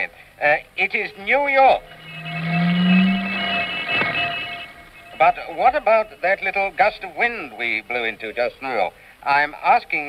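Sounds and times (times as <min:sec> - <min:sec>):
ship's horn long low blast: 0:01.8 - 0:05.3.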